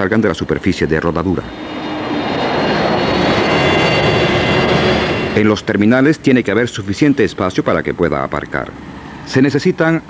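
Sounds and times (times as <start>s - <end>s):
high whining tones: 0.0s - 9.4s
jet engines running: 0.0s - 10.0s.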